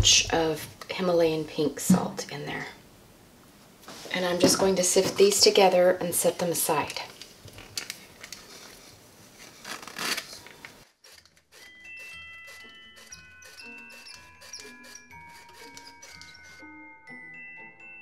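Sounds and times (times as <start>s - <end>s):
bell-like mallet music: 11.7s - 18.0s.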